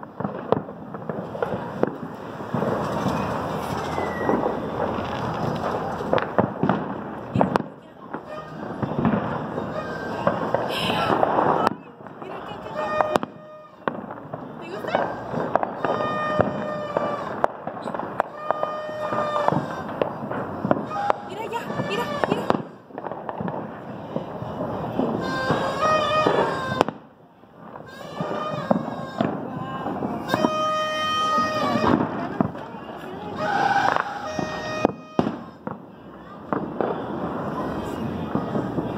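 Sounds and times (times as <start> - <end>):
fireworks and firecrackers banging: 0.0 - 38.9.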